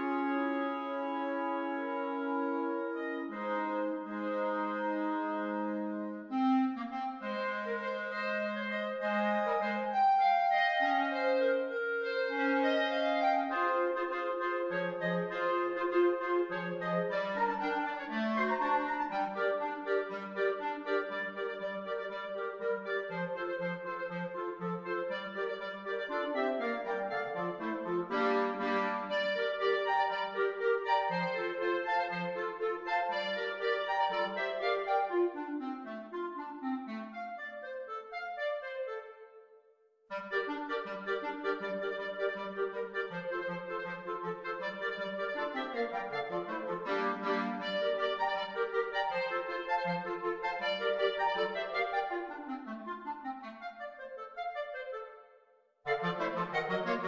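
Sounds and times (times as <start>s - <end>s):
clarinet quartet playing: 0.0s - 39.5s, 40.1s - 57.0s.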